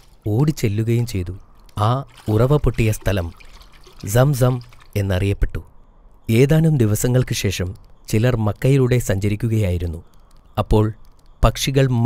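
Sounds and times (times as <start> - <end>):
man narrating: 0.3 - 3.4, 4.0 - 5.7, 6.3 - 12.0
running water: 1.6 - 5.4.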